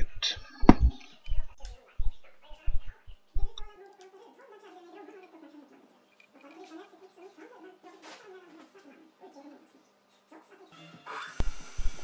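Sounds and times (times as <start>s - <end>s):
faint background music: 0.0s - 12.0s
grinding hiss: 11.2s - 12.0s.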